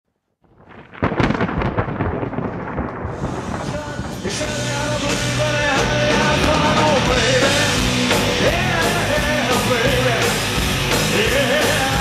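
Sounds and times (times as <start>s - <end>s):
thunder cracking and rolling: 0.4s - 10.5s.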